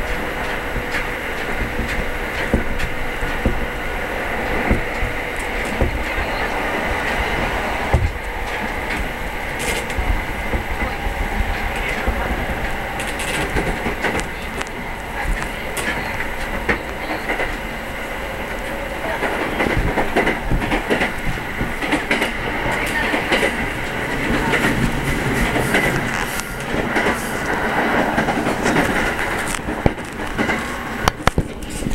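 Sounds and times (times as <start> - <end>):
train running noise: 0.0 - 31.9
wheels clacking on track: 0.0 - 31.9.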